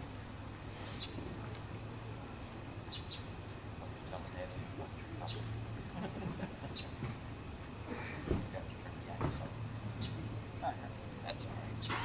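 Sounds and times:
high insect chirps: 0.0 - 12.0
low steady hum: 0.0 - 12.0.

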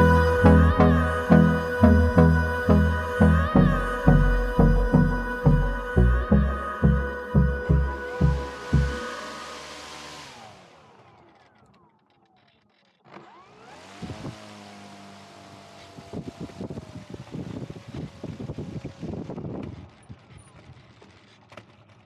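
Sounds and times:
electric motor and propeller whine: 0.0 - 22.0.

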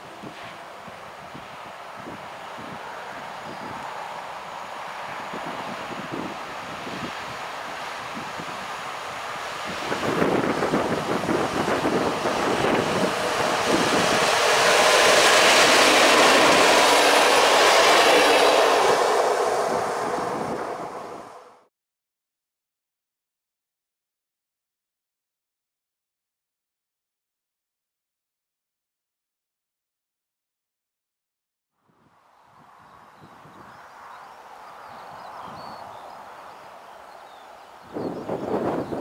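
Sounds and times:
electric locomotive passing: 0.0 - 21.7, 32.5 - 39.0
wheels running on rails: 2.0 - 21.5.

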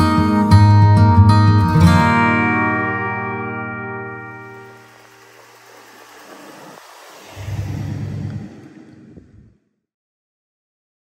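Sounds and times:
pickup truck engine rumbling: 2.6 - 9.6.

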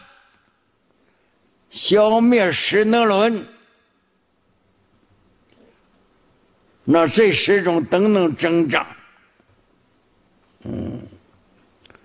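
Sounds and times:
man's throat noise: 10.6 - 11.4.

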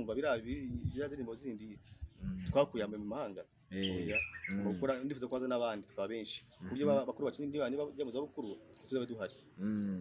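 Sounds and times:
bird chirping: 3.7 - 5.2.

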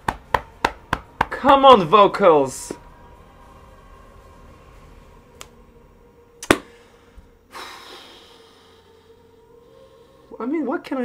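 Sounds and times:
breathy sigh: 6.6 - 10.3.

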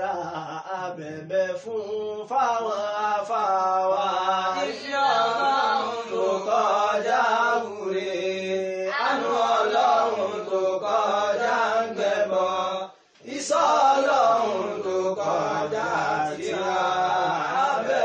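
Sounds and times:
chanted vocal song: 0.0 - 18.0.

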